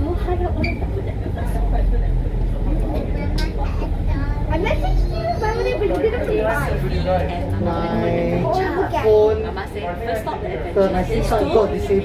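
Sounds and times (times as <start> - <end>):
bus engine rumble: 0.0 - 12.0
faint voices talking: 0.0 - 12.0.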